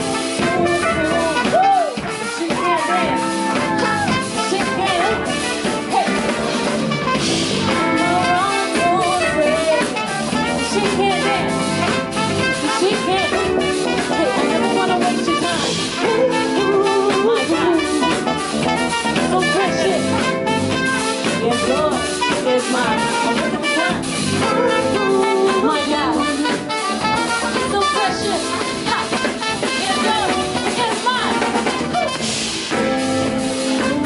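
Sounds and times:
drum kit: 0.0 - 34.0
trumpet lines: 0.0 - 34.0.

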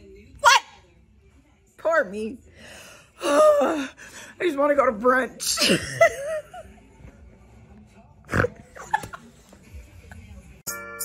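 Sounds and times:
woman laughing: 5.6 - 6.9, 8.5 - 9.4.

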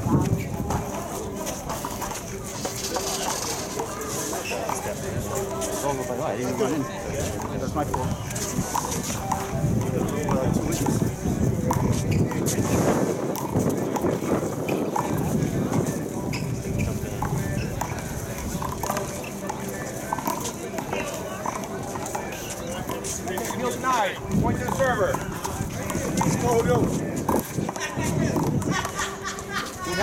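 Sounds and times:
people talking: 0.0 - 30.0.

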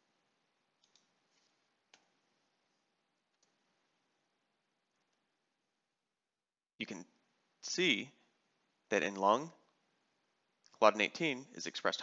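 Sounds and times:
computer keys clicking: 0.8 - 1.1.

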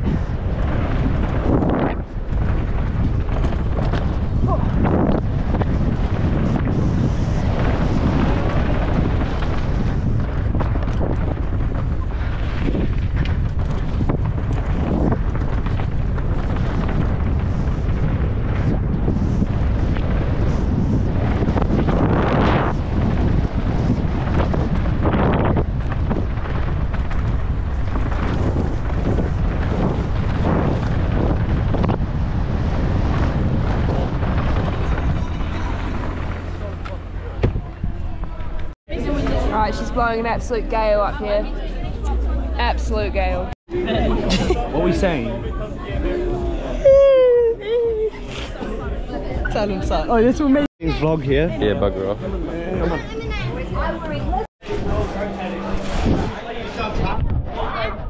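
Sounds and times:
bike tyres on gravel trail: 0.0 - 38.8
bike knocks and rattles: 0.0 - 39.2
wind buffeting microphone: 0.0 - 58.0.

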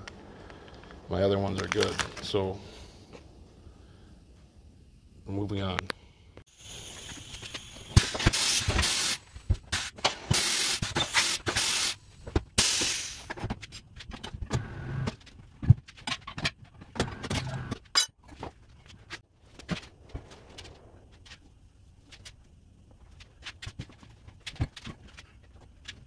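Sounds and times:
compressed air hissing: 6.4 - 13.4.

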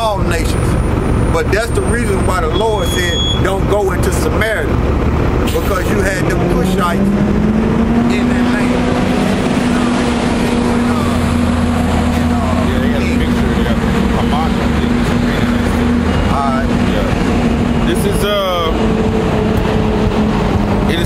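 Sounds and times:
idling vehicle engines: 0.0 - 21.0
low voices: 0.0 - 21.0.

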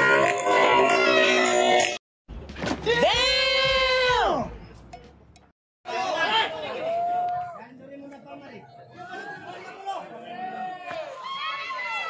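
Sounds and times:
people chattering and calling out: 5.9 - 12.0.

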